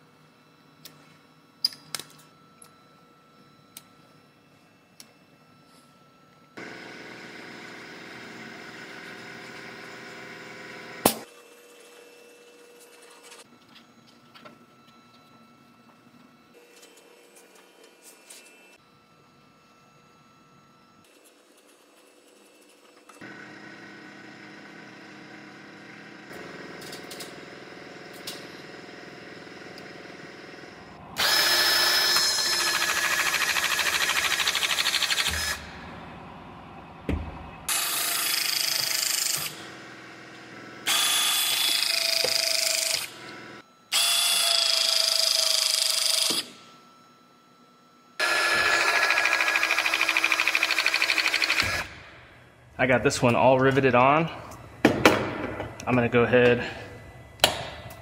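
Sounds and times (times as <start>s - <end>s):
pneumatic rivet tool whine: 31.2s - 35.7s, 37.7s - 39.8s, 40.8s - 46.7s, 48.2s - 52.0s.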